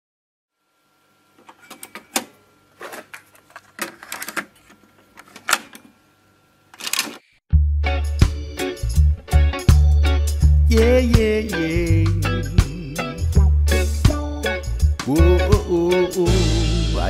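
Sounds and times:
cassette clatter: 0:01.7 - 0:05.9
reggae music with heavy bass: 0:07.5 - 0:17.0.

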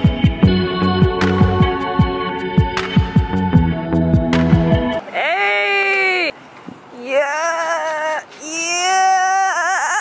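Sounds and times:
high voice wailing: 0:05.0 - 0:06.4, 0:07.0 - 0:10.0.

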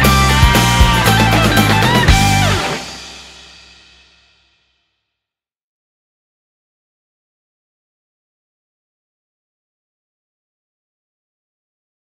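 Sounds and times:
guitar pitch slide: 0:00.0 - 0:03.7
final chord ringing out: 0:00.0 - 0:04.0
rock band playing: 0:00.0 - 0:04.0.

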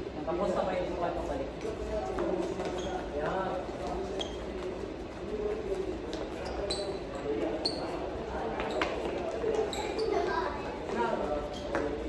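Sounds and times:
voices chattering in echoing hall: 0:00.0 - 0:12.0
shoe squeaks: 0:02.4 - 0:05.0, 0:06.1 - 0:10.6, 0:11.2 - 0:12.0.

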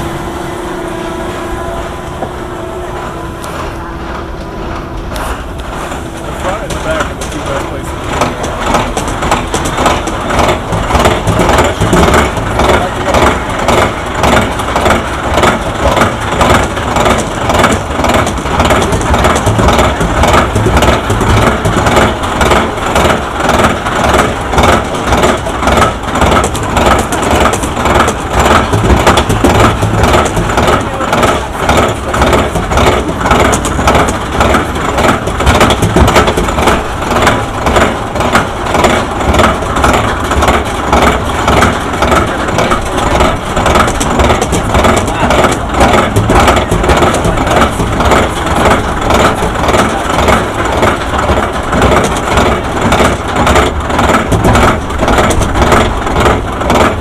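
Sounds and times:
roller coaster lift chain clatter: 0:00.0 - 0:57.0
anti-rollback dogs clacking: 0:03.4 - 0:57.0.

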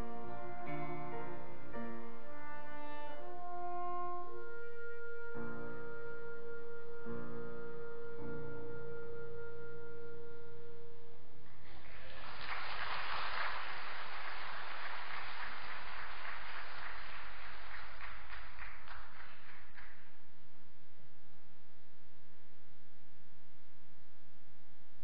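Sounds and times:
audience applauding: 0:11.5 - 0:20.2.

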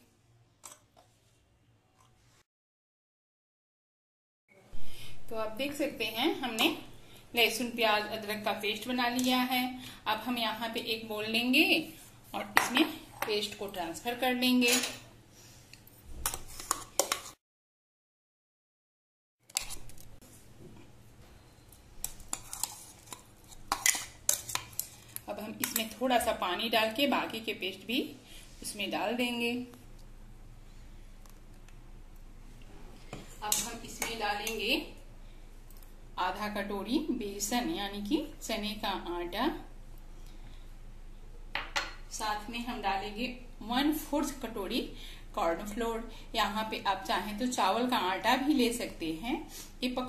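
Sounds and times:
metal spoon scraping steel jar: 0:22.1 - 0:24.9.

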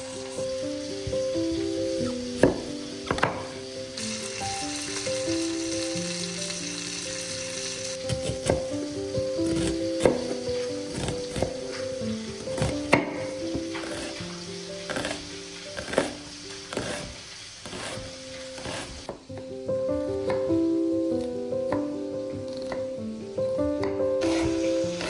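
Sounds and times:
chicken sizzling in oil: 0:00.0 - 0:20.3, 0:24.2 - 0:25.0
background music: 0:00.0 - 0:25.0
knife chopping on wooden board: 0:02.4 - 0:03.5, 0:08.1 - 0:11.7, 0:12.4 - 0:14.2, 0:15.8 - 0:19.2, 0:20.2 - 0:20.4, 0:23.8 - 0:25.0
knife knocking on cutting board: 0:02.4 - 0:03.5.

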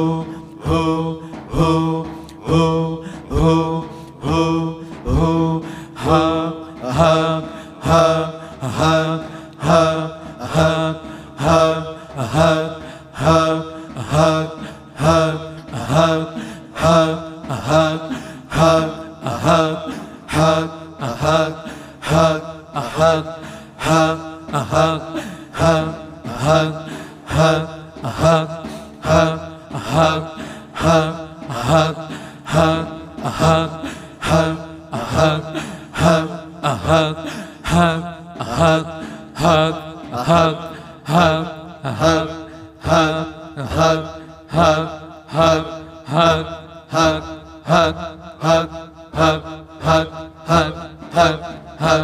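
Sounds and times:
voices chanting rhythmically: 0:00.0 - 0:52.0.

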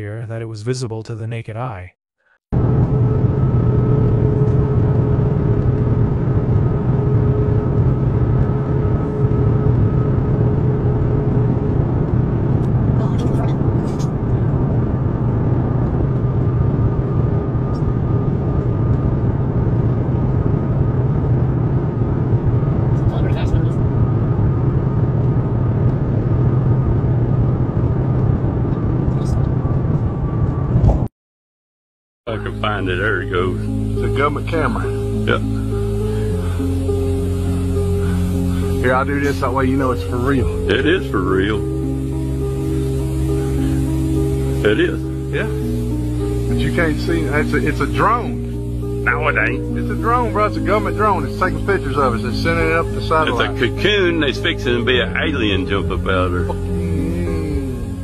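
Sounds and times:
faint steady hum: 0:02.6 - 0:30.6, 0:32.3 - 0:58.0
car cabin road rumble: 0:02.6 - 0:31.1, 0:32.3 - 0:58.0.

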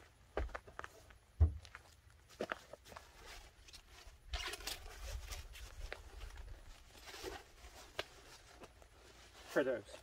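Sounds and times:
fabric rustling: 0:02.8 - 0:10.0.

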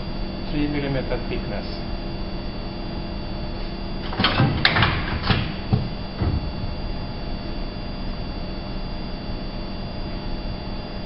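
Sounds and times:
electrical hum: 0:00.0 - 0:11.0
metal clamps clicking and knocking: 0:04.0 - 0:06.0.

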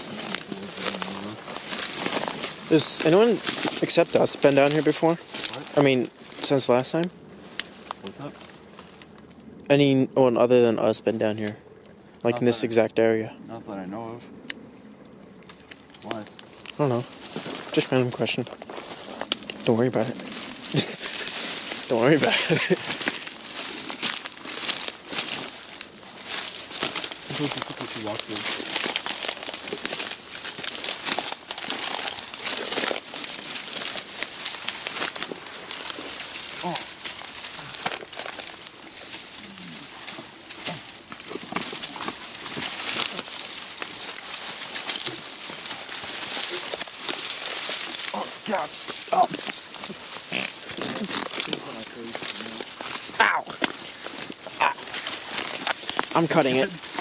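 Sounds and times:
twigs crunching underfoot: 0:00.0 - 0:09.7, 0:14.3 - 0:57.0.

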